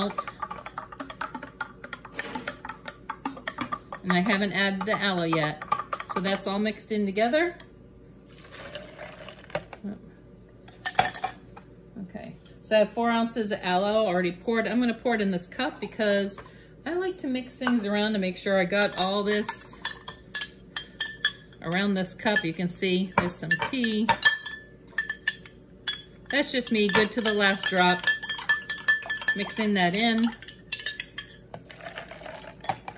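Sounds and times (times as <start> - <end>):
metal spoon clinking in a glass: 23.4 - 31.4
drink pouring over ice: 31.7 - 32.6.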